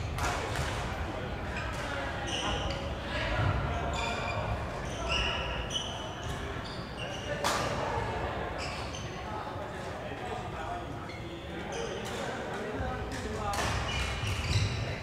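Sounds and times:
shoes squeaking on wooden floor: 13.9s - 15.0s.

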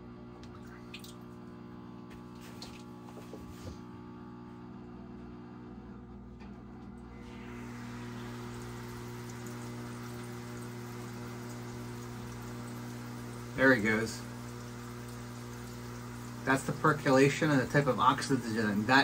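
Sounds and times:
electric hum: 0.0s - 19.0s.

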